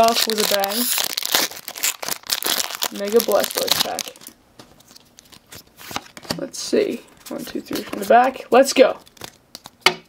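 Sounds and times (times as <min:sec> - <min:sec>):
foil wrapper crinkling and tearing: 0:00.0 - 0:05.7, 0:09.0 - 0:09.8
cards rustling: 0:00.0 - 0:09.8.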